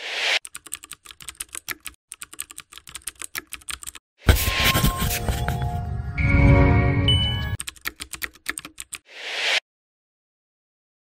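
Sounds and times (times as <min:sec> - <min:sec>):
keyboard typing clicks: 0:00.4 - 0:04.0, 0:07.5 - 0:09.0.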